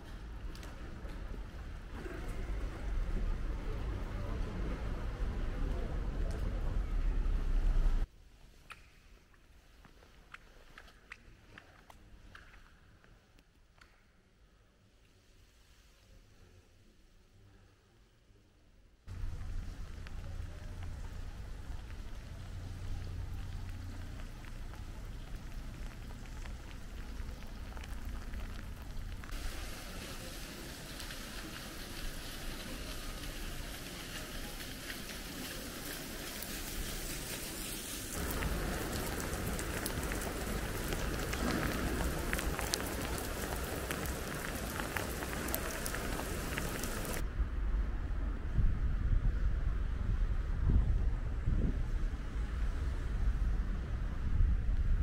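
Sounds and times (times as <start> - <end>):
rain on stone paving: 0.0 - 8.1, 19.1 - 47.2.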